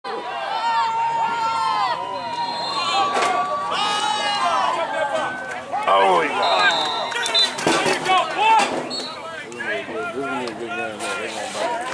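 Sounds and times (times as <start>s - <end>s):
voices shouting: 0.1s - 11.9s.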